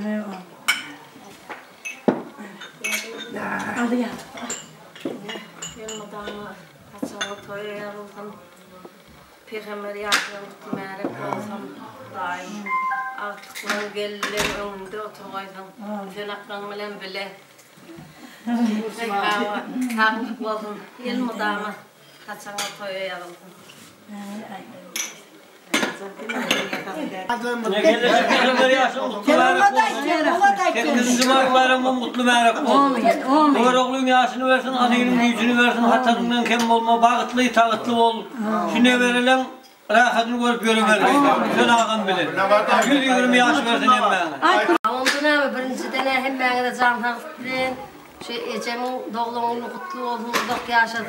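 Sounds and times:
dishes and cutlery clinking: 0:00.4 - 0:06.4, 0:12.7 - 0:14.5, 0:24.9 - 0:27.0, 0:42.7 - 0:43.1.

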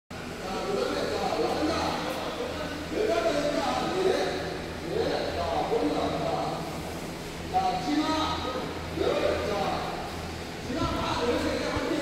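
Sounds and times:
steady low hum: 0:00.1 - 0:12.0.

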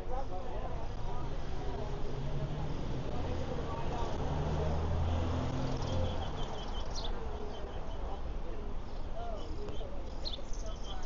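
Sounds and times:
small bird chirping: 0:05.6 - 0:08.1, 0:08.9 - 0:11.0.

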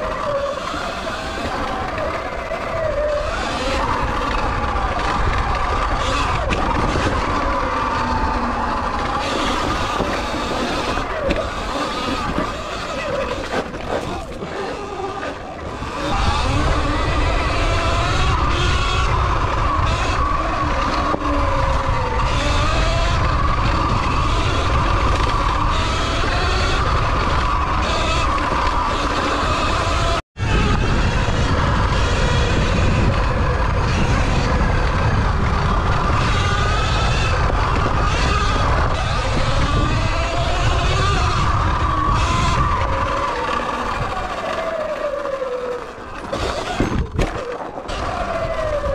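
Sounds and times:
electric motor whine: 0:00.0 - 0:48.9
wind buffeting microphone: 0:00.0 - 0:48.9.

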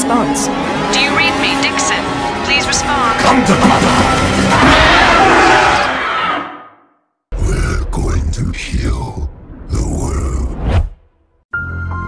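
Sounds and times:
film soundtrack music and effects: 0:00.0 - 0:12.0.

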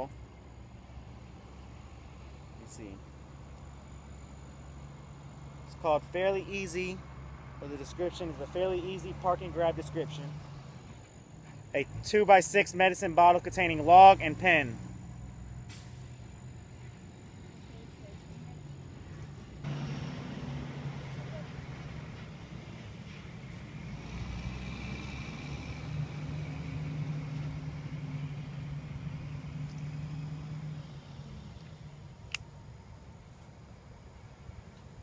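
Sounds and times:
vehicle engine running: 0:13.0 - 0:35.0.

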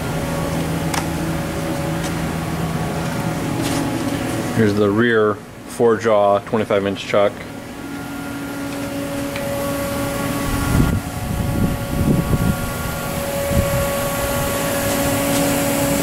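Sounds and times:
lathe machine hum: 0:00.0 - 0:04.8, 0:07.4 - 0:16.0.

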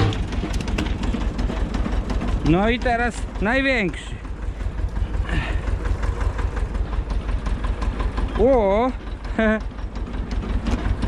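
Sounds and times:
tractor engine idling: 0:00.0 - 0:11.0.

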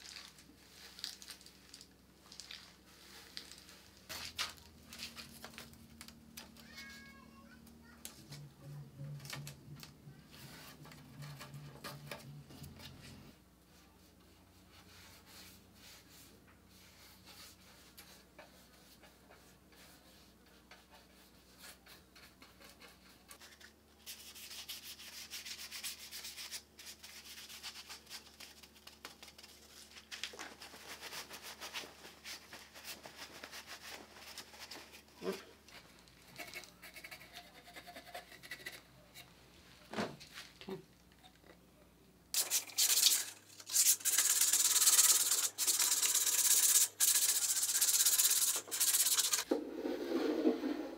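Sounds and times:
rag rubbing on wood: 0:43.8 - 0:50.9
brush dragged across paint: 0:45.0 - 0:50.9.

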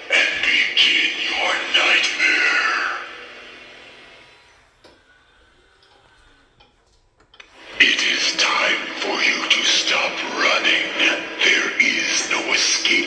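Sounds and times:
voice from speaker: 0:00.0 - 0:03.2, 0:07.7 - 0:13.0.

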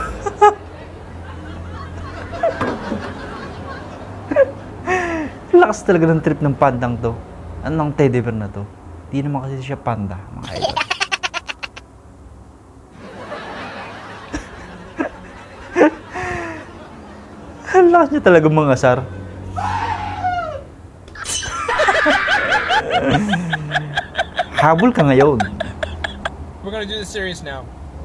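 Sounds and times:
high-pitched voice squealing: 0:10.4 - 0:11.8
high-pitched laughter: 0:10.4 - 0:11.9, 0:21.2 - 0:26.4.

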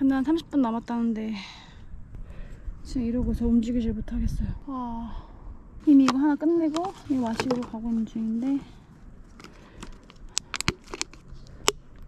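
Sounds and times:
plastic bottle crinkling: 0:06.7 - 0:08.1, 0:09.3 - 0:12.0.

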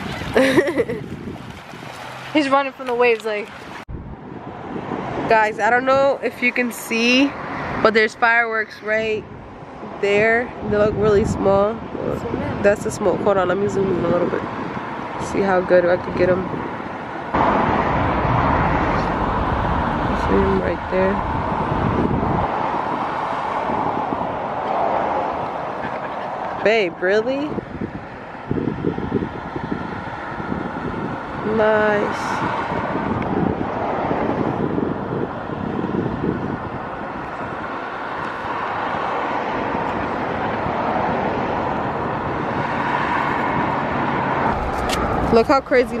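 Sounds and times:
wind rumbling on microphone: 0:00.0 - 0:46.0.

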